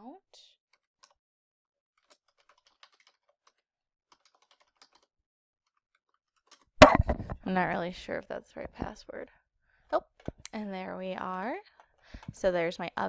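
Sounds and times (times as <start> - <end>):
faint keyboard typing: 2.0 - 5.1, 5.7 - 6.7, 11.2 - 12.6
loud thump: 6.8 - 7.4.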